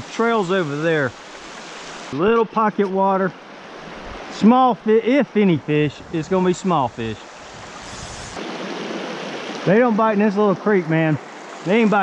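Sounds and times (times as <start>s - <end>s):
creek rushing over rocks: 0.0s - 12.0s.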